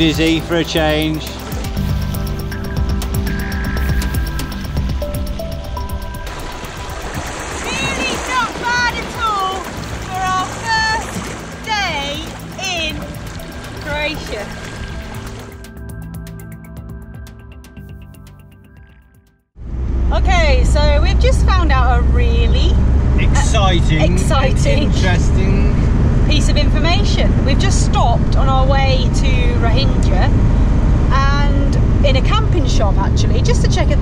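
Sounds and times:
wind: 0.0s - 16.4s, 19.6s - 34.0s
water at shoreline: 0.0s - 16.8s
music track: 0.0s - 19.4s
woman talking: 7.6s - 11.0s, 11.7s - 13.0s, 13.8s - 14.5s, 20.1s - 22.8s, 26.3s - 30.3s, 31.1s - 34.0s
van engine and tyres rumbling: 19.6s - 34.0s.

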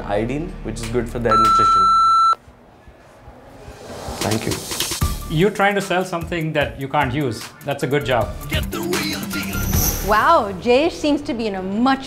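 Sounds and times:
electronic timer beep: 1.3s - 2.4s.

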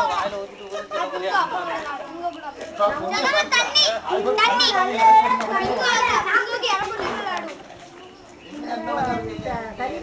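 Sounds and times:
children shouting and chattering: 0.0s - 10.0s.

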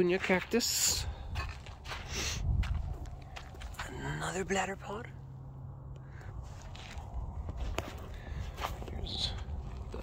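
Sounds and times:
footsteps crunching on dirt: 0.0s - 4.5s, 6.1s - 10.0s
low rumble: 0.9s - 10.0s.

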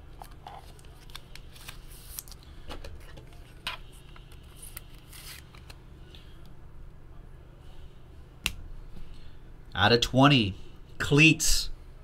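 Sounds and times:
trading cards shuffling: 0.1s - 5.8s.

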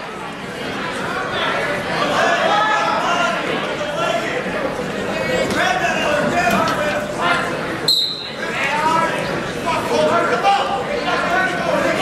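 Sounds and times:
crowd voices in a gym: 0.0s - 12.0s
referee's whistle blast: 7.9s - 8.3s.

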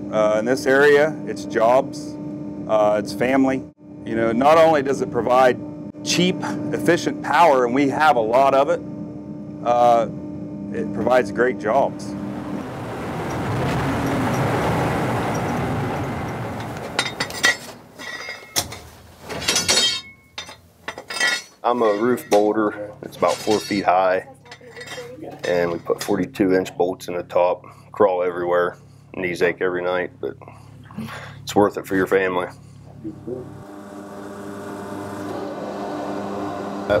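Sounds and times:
machine humming: 0.0s - 18.8s, 20.0s - 37.0s
metal clanks with short ring: 17.0s - 18.8s, 19.4s - 22.5s, 23.2s - 26.1s.

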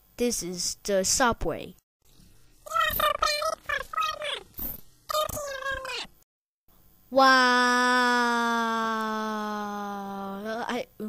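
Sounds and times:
squeaky cartoon voice: 2.7s - 4.5s, 5.1s - 6.1s.

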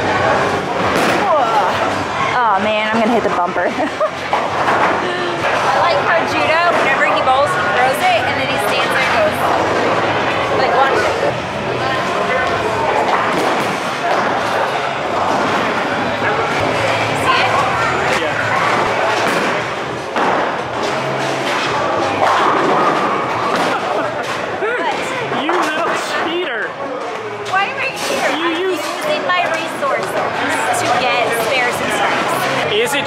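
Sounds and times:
people's voices: 0.0s - 33.0s.

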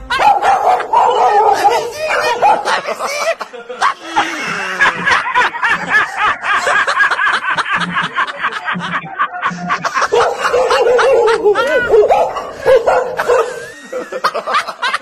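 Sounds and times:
people laughing: 0.0s - 15.0s.

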